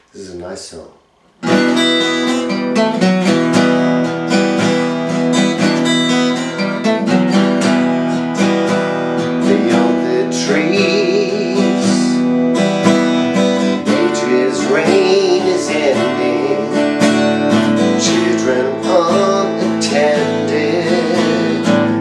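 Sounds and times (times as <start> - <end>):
acoustic guitar chords: 1.0 - 22.0.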